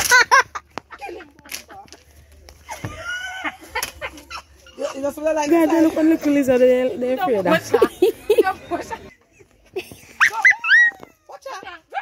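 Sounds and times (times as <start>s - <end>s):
soft scattered sounds: 0.0s - 12.0s
high-pitched cries: 10.2s - 11.4s.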